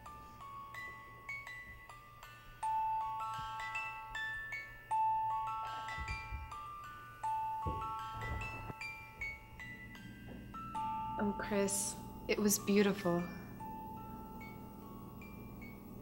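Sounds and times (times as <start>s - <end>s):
music box melody: 0.0s - 16.0s.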